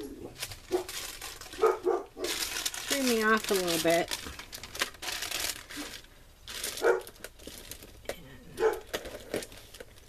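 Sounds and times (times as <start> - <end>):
paper rustling and crinkling: 0.0 - 8.0, 8.6 - 10.0.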